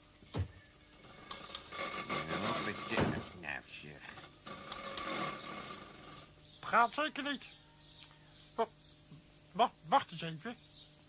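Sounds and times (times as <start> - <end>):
mechanical whirring: 0.8 - 6.4.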